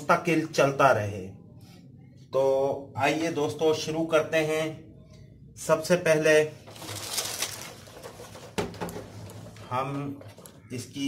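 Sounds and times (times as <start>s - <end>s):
fan handling rustling and knocking: 7.8s - 10.5s.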